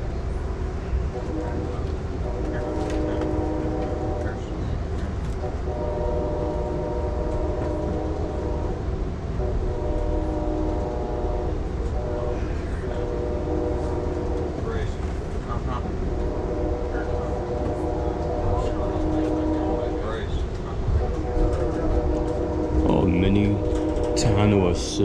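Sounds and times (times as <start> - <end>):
train running rumble: 0.0 - 25.0
locomotive air horn blasts: 2.2 - 4.6, 5.4 - 15.0, 16.0 - 20.3, 20.9 - 25.0.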